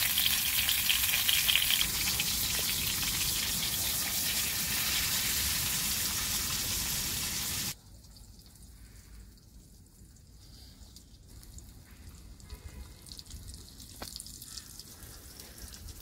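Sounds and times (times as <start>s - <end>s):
food sizzling in oil: 0.0s - 7.8s.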